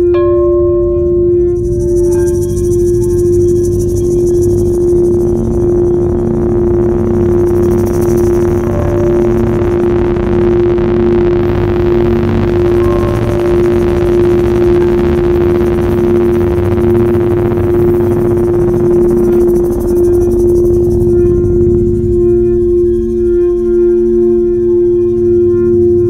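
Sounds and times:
singing bowls and gongs music: 0.0s - 26.0s.

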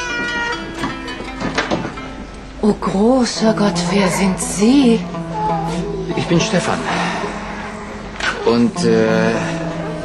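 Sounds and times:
baby whimpering cries: 0.0s - 0.9s, 5.0s - 8.7s
soft background music: 0.0s - 10.0s.

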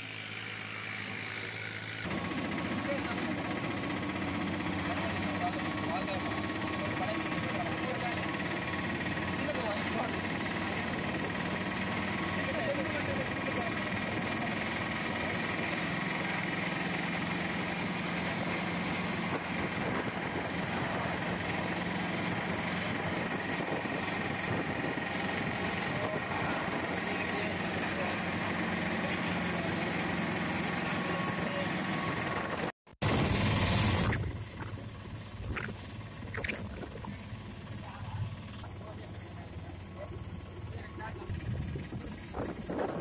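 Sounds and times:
vehicle engine and road noise: 0.0s - 43.0s
rush of wind noise: 41.3s - 43.0s.

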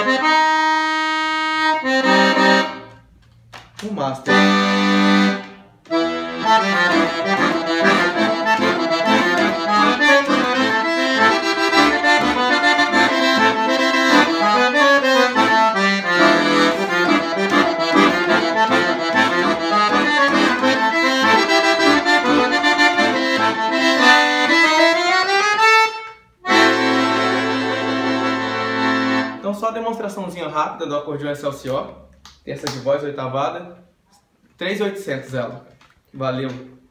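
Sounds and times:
piano accordion playing a tune: 0.0s - 3.2s, 4.2s - 30.1s.

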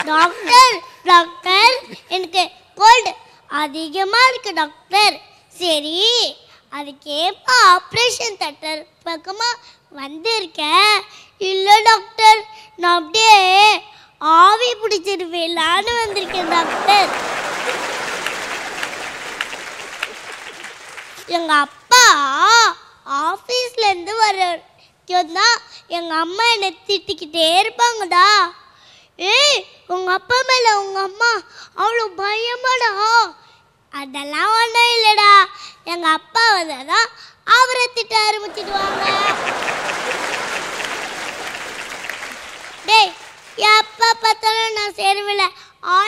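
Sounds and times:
studio audience applauding: 16.0s - 21.8s, 38.4s - 43.9s.

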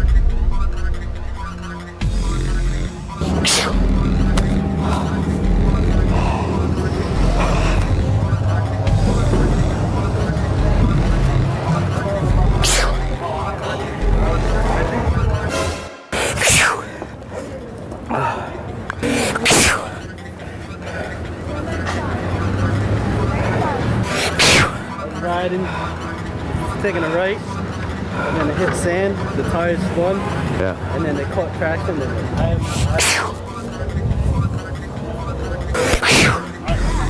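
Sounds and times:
vehicle engine rumble: 0.0s - 15.6s
faint voices: 0.0s - 37.0s
street traffic: 0.0s - 37.0s.

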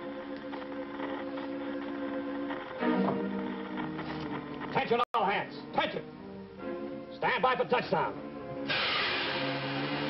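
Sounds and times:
background music: 0.0s - 10.0s
rushing rocket exhaust hiss: 8.6s - 10.0s.

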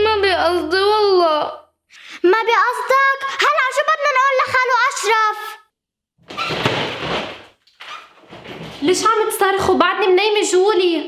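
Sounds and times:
television crashing: 6.2s - 9.1s.

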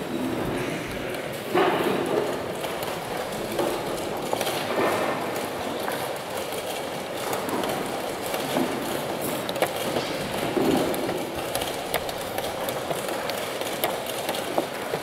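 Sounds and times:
crowd hubbub in a hall: 0.0s - 15.0s
chess pieces clicking on board: 8.4s - 15.0s.

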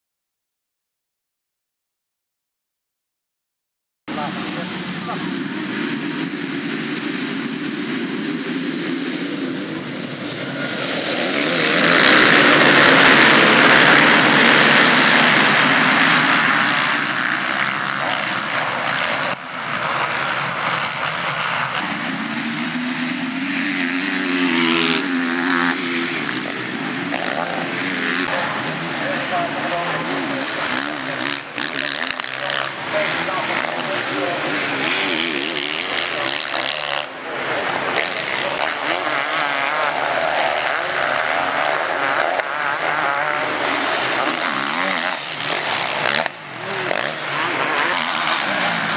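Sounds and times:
motocross motorcycles revving: 4.1s - 48.9s.

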